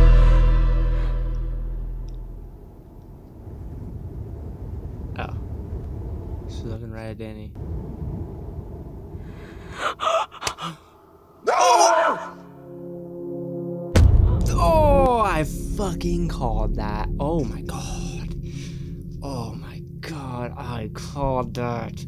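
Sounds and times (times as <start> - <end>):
low held tone: 0.0 - 3.2
low ambient noise: 0.0 - 11.6, 14.5 - 22.0.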